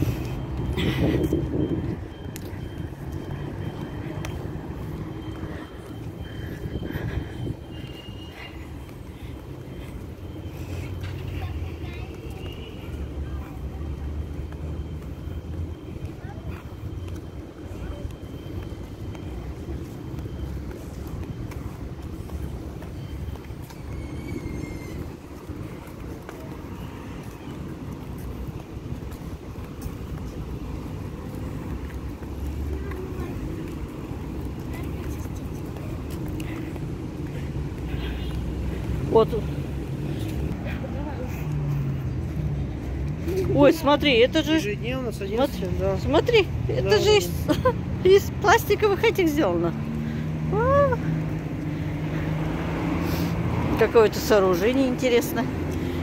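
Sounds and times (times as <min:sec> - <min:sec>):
distant road traffic: 0:00.0 - 0:56.0.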